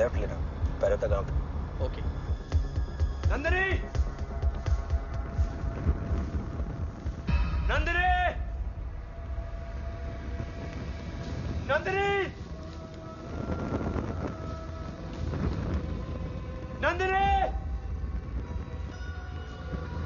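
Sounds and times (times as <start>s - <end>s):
background music: 0.0s - 20.0s
low vehicle rumble: 0.0s - 20.0s.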